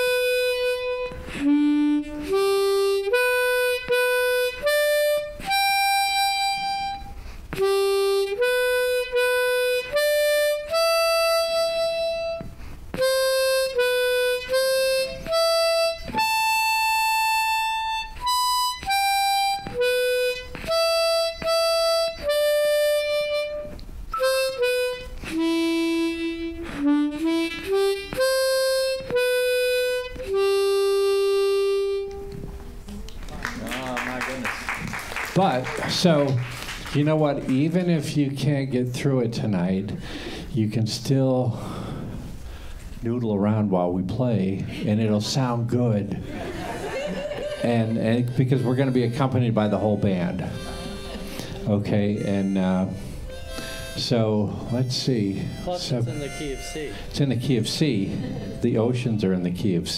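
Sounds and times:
harmonica melody: 0.0s - 32.8s, 39.1s - 40.6s, 46.8s - 59.9s.

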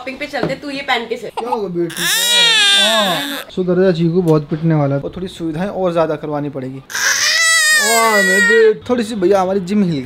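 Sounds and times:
newborn baby crying: 1.4s - 3.5s, 6.9s - 8.7s.

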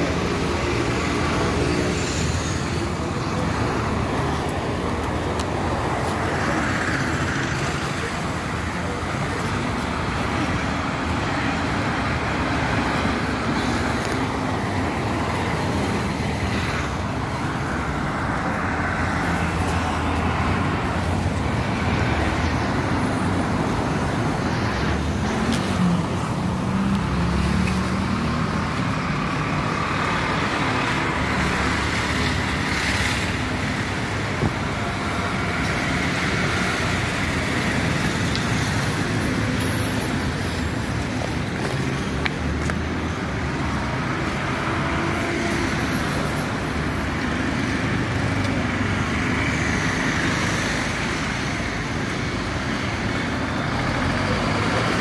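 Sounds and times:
street traffic: 0.0s - 55.0s.

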